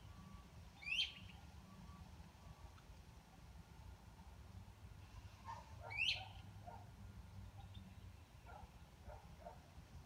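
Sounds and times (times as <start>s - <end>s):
faint bird calls: 0.0s - 2.7s, 5.0s - 6.5s.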